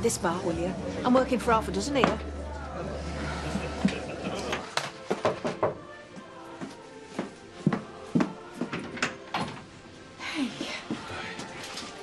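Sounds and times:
footsteps on hard floor: 0:06.2 - 0:08.9.

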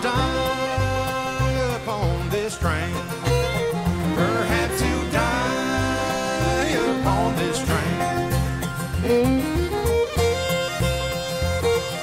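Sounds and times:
acoustic guitar: 0:00.0 - 0:12.0
banjo: 0:00.0 - 0:12.0
fiddle sliding melody: 0:00.0 - 0:12.0
walking bass line: 0:00.0 - 0:12.0.

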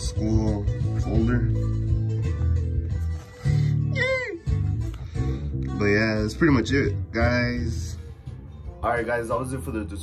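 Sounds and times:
bass guitar line: 0:00.0 - 0:10.0.

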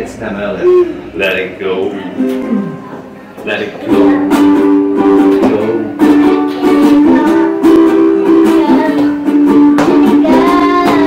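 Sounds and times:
ukulele strumming: 0:02.1 - 0:11.0.

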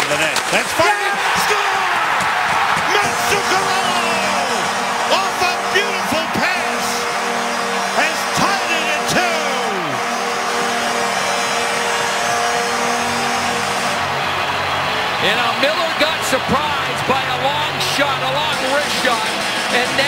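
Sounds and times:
crowd cheering and whistling: 0:00.0 - 0:20.0
long goal horn: 0:02.7 - 0:16.0.

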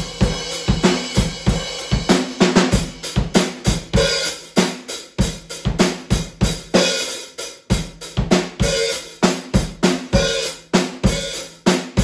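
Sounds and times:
drum kit groove: 0:00.0 - 0:12.0.

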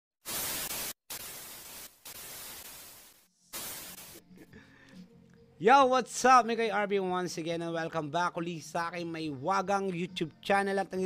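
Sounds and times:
tv static hiss bursts: 0:00.2 - 0:04.3.

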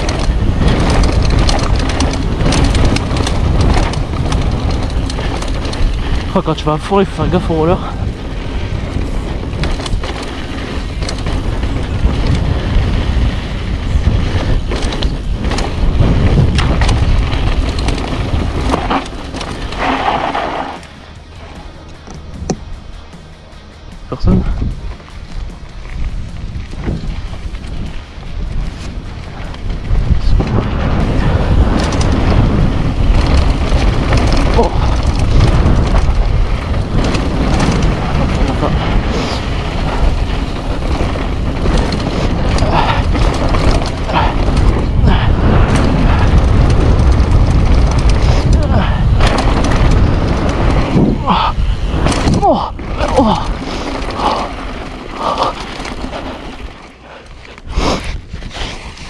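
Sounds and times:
bike rattling and knocking: 0:00.0 - 0:59.0
tyres on loose dirt: 0:00.0 - 0:59.0
wind on microphone: 0:00.0 - 0:59.0.

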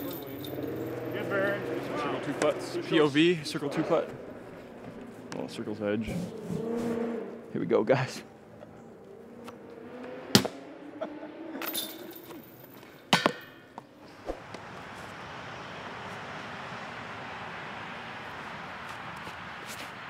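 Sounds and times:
chains jingling: 0:00.0 - 0:01.2, 0:11.6 - 0:12.8
steady background hiss: 0:14.1 - 0:20.0.

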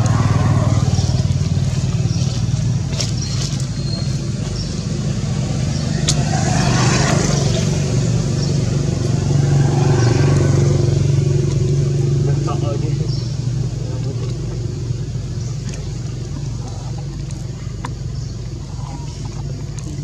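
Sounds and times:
loud low engine drone: 0:00.0 - 0:20.0.

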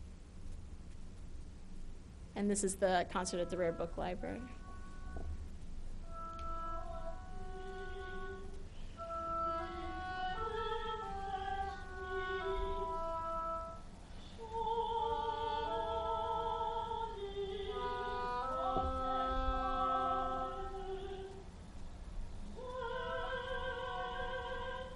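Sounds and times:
oboe and harp chamber music: 0:02.9 - 0:05.4, 0:06.0 - 0:16.7.

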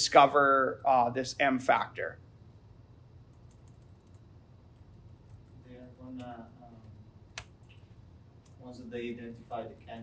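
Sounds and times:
computer keyboard typing: 0:03.3 - 0:07.8.

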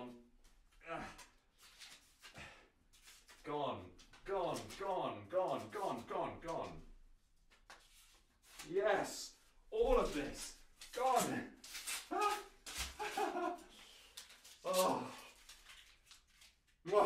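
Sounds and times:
paper notes ripping and rustling: 0:09.8 - 0:17.0.

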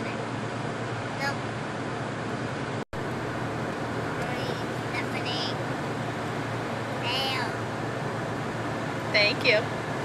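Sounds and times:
car road noise hum: 0:00.0 - 0:10.0
child's high-pitched voice: 0:07.0 - 0:07.6.

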